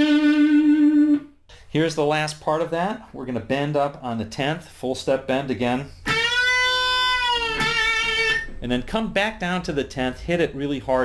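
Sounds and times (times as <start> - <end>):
electric guitar note bending: 0.0 - 1.3, 6.0 - 8.6.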